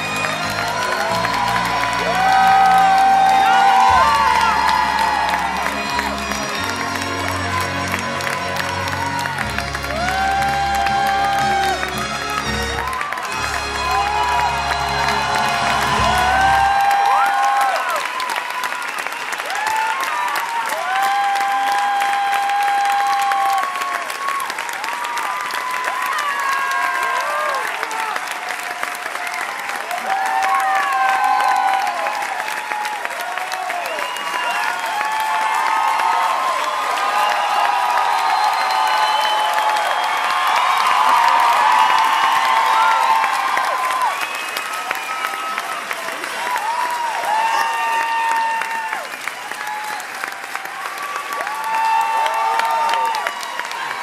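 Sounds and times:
orchestra music: 0.0s - 17.1s
audience clapping: 0.0s - 54.0s
crowd shouting and whooping: 0.0s - 54.0s.

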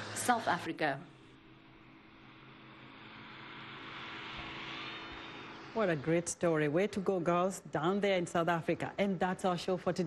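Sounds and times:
propeller aircraft engine drone: 0.0s - 10.0s.

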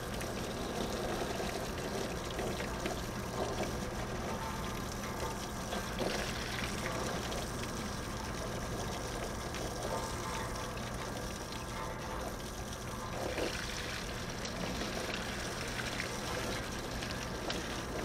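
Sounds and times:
hose water spraying on metal unit: 0.0s - 18.0s.

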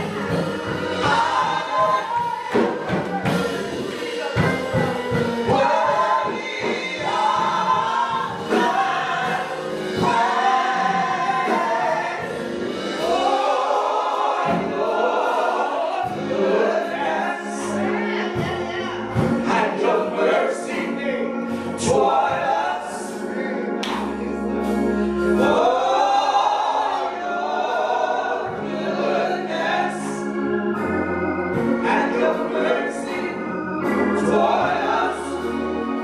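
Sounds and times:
gospel singing in harmony: 0.0s - 36.0s
musical accompaniment: 0.0s - 36.0s.

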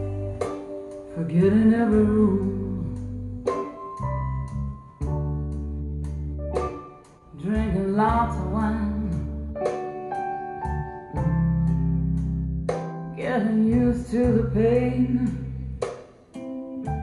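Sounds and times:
woman singing: 0.0s - 3.1s, 7.3s - 9.4s, 13.2s - 15.6s
blues song through loudspeakers: 0.0s - 17.0s.

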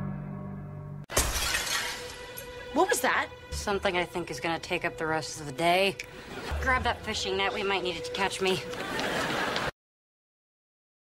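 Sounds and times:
glass shattering crash: 1.1s - 2.5s.

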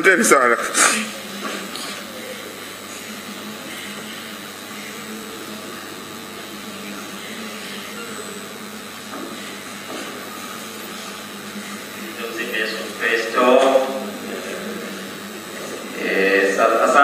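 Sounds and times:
steady background hiss: 0.0s - 17.0s.

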